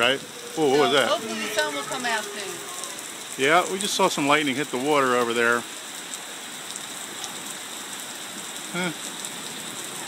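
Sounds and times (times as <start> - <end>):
steady rain on a wet deck: 0.0 - 10.0.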